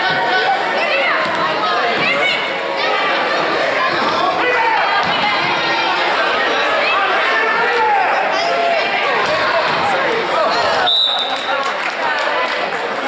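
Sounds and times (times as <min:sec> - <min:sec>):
spectators shouting and chattering: 0:00.0 - 0:13.0
referee's whistle blast: 0:10.8 - 0:11.5.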